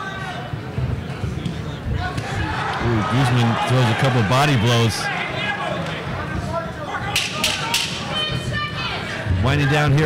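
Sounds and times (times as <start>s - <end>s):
crowd murmur: 0.0s - 10.0s.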